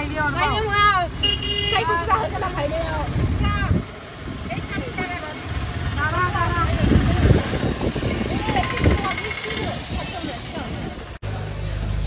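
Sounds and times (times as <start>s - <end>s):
voices talking: 0.0s - 11.2s
road noise: 0.0s - 12.0s
vehicle engine rumble: 0.0s - 12.0s.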